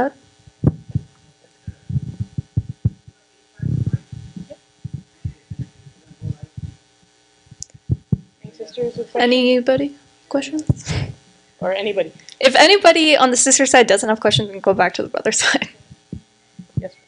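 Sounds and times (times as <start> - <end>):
faint electrical hum: 0.0 - 17.0
microphone handling thumps: 0.4 - 6.8, 7.5 - 10.0, 10.6 - 11.3, 14.2 - 17.0
low rumble: 0.5 - 6.8, 7.6 - 8.5.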